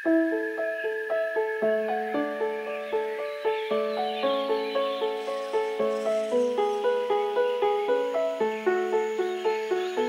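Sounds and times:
solo piano melody: 0.0 - 10.0.

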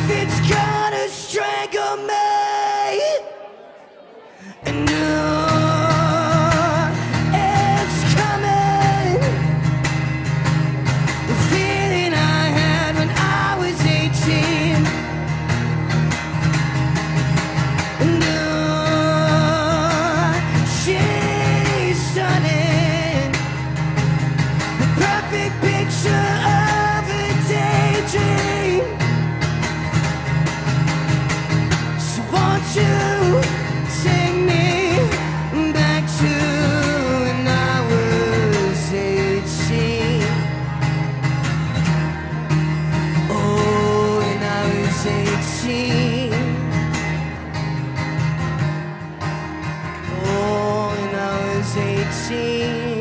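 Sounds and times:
acoustic guitar strumming chords: 0.0 - 2.8, 3.5 - 53.0.

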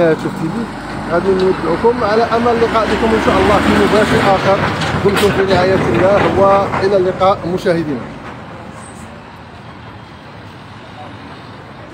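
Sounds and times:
cars driving slowly past: 0.0 - 11.9.

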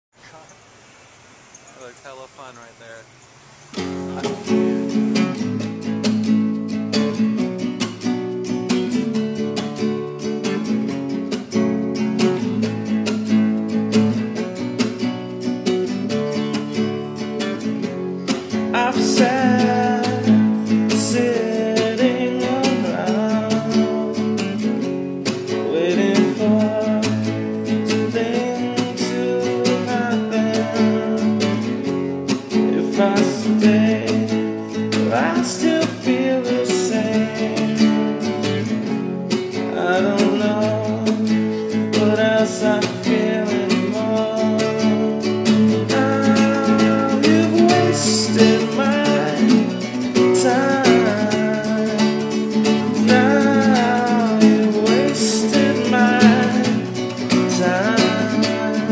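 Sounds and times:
acoustic guitar strumming chords: 3.7 - 58.9
wordless melody line: 3.7 - 58.9.

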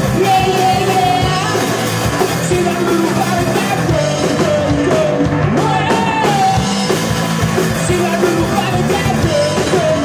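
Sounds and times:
live rock band playing: 0.0 - 10.0
person singing: 0.0 - 10.0.

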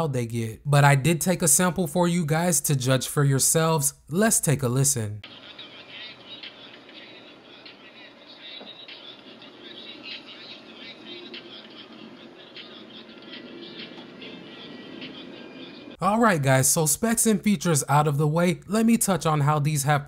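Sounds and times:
faint thin rap music from earbud: 4.8 - 18.4.

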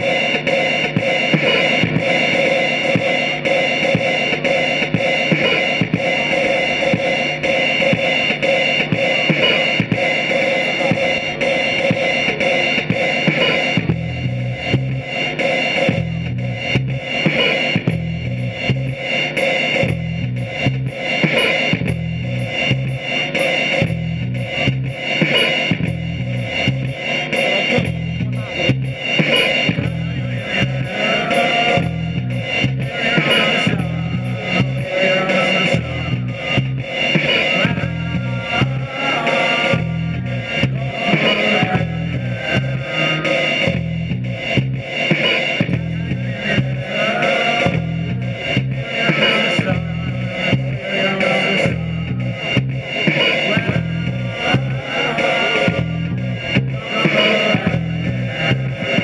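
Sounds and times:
drums: 0.0 - 59.0
keyboards: 0.0 - 59.0
repeating low bass line: 0.0 - 59.0.

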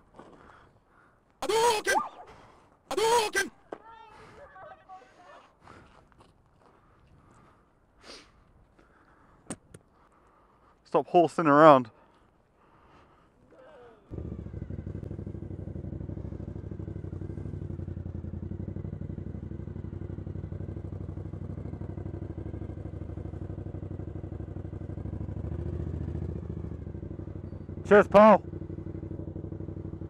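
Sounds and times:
motorcycle engine idling: 14.1 - 30.0.

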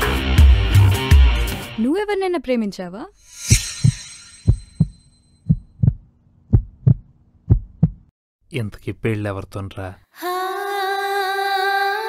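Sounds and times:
heartbeat thumps: 3.8 - 8.1.

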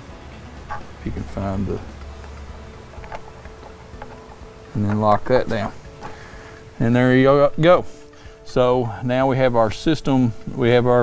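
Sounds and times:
low steady hum: 0.0 - 7.2
handling plastic connectors: 0.7 - 7.2.

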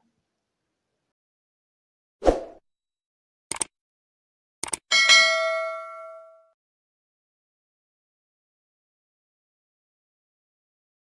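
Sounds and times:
click: 3.5 - 3.7, 4.6 - 4.8.

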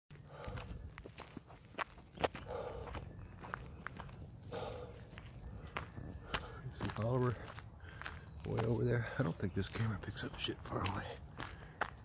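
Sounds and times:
footsteps crunching on gravel: 0.1 - 12.0.

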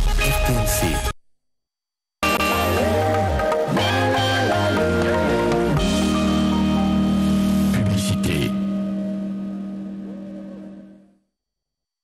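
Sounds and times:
jingle with held musical tones: 2.2 - 4.8.

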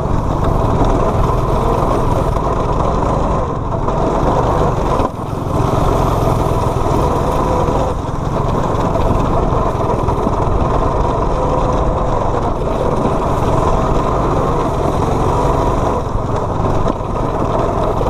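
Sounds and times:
go-kart engines racing: 0.0 - 18.0.

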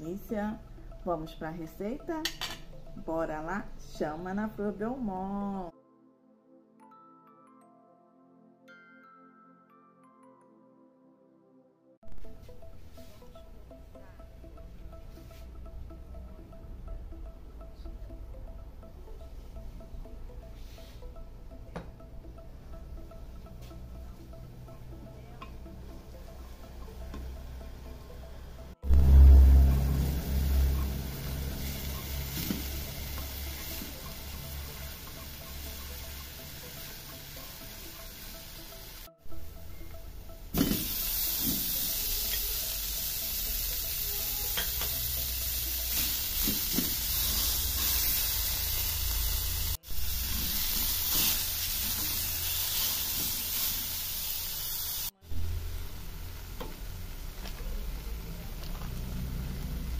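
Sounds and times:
food sizzling in oil: 28.9 - 39.0, 40.5 - 57.5.

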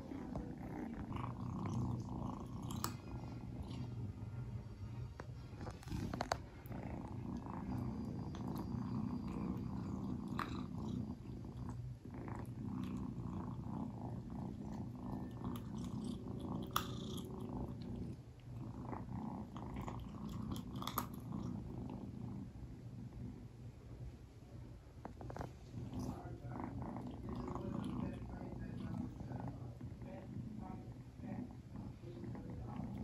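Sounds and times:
kitten purring: 0.0 - 24.0, 24.8 - 33.0
kibble crunching and clicking in bowl: 1.6 - 3.0, 14.8 - 18.1, 19.5 - 21.6.

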